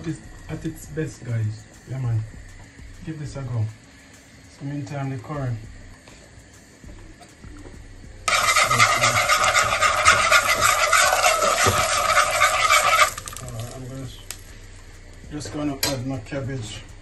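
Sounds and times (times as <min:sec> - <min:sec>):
liquid sizzling in hot oil: 0:08.3 - 0:14.6.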